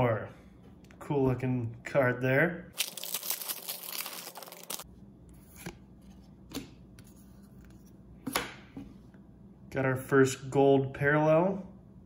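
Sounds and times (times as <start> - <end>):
foil pack ripping: 2.8 - 4.8.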